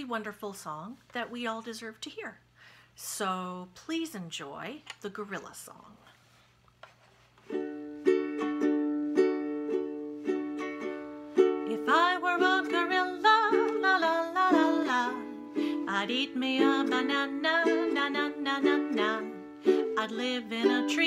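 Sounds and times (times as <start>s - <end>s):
ukulele strumming: 7.4s - 21.0s
woman singing: 11.6s - 21.0s.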